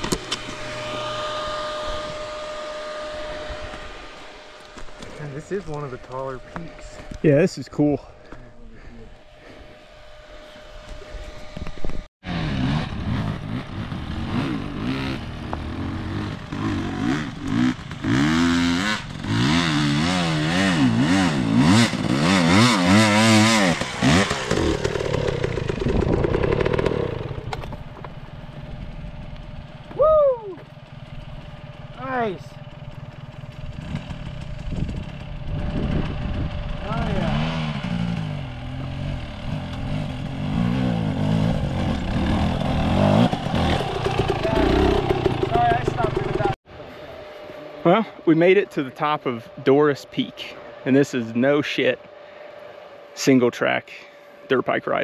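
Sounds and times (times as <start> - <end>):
dirt bike engines revving: 0.0 - 55.0.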